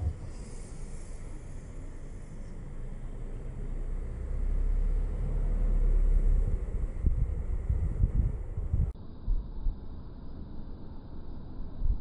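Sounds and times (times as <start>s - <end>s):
wind buffeting microphone: 6.3s - 9.4s.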